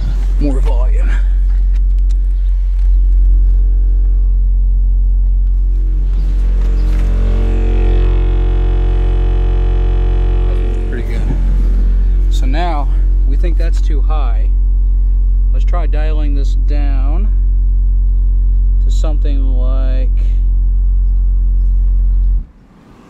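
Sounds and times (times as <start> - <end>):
deep droning test tone: 0.0 - 22.6.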